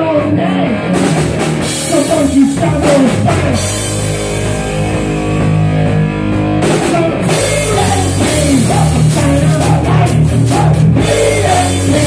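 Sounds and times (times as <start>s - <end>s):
live rock band playing: 0.0s - 12.0s
drum kit and cymbals: 0.8s - 12.0s.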